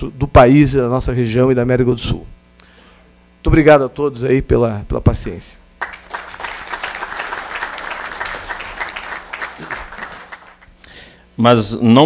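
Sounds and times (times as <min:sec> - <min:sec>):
audience applauding: 0:05.8 - 0:10.8.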